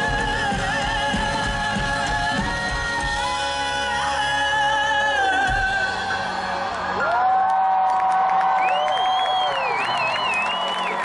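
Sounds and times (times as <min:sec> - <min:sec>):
live rock band: 0:00.0 - 0:07.0
crowd cheering and clapping: 0:05.3 - 0:11.0.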